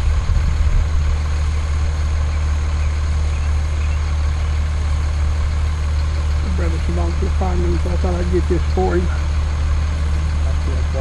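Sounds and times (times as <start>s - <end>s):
fire engine idling: 0.0s - 11.0s.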